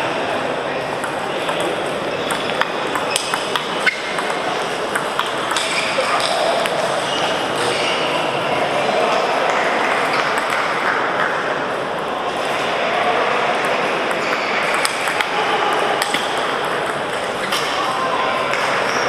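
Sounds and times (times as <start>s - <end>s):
murmur of voices: 0.0s - 19.0s
table tennis balls clicking: 0.9s - 7.2s, 9.5s - 11.5s, 13.6s - 17.8s.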